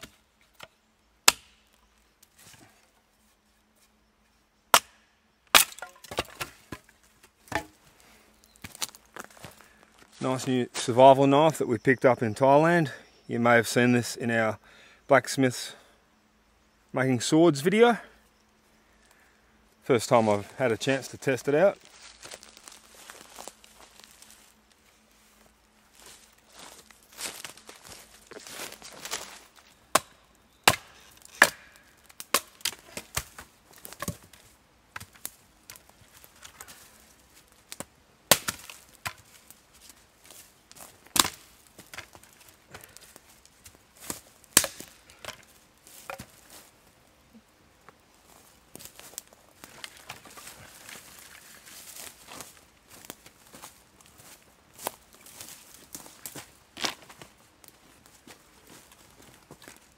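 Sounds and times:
knife chopping wood: 1.3s - 1.6s, 4.7s - 6.8s, 7.5s - 7.8s, 30.7s - 34.2s, 38.3s - 39.2s, 41.1s - 42.1s, 44.6s - 45.4s
wood cracking: 5.5s - 6.9s, 40.7s - 43.2s, 44.0s - 46.4s.

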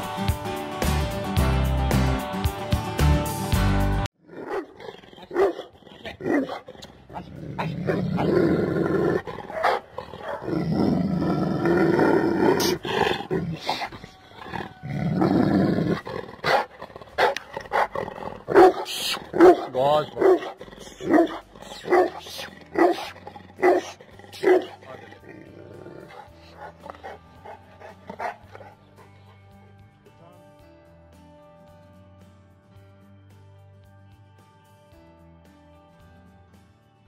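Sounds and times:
background music: 0.0s - 37.0s
dog growling: 4.2s - 29.4s.

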